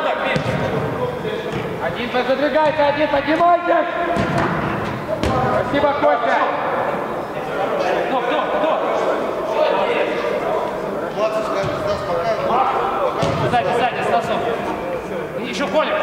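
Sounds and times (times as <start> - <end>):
players shouting in echoing hall: 0.0 - 16.0
football being kicked: 0.3 - 0.8, 13.2 - 13.6.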